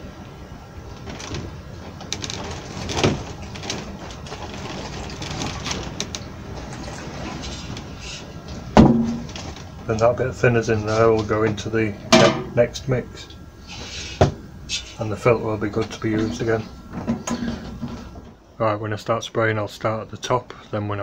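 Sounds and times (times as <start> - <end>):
liquid pouring into plastic cup: 5.0 - 7.7
sharp knock: 8.8 - 9.3.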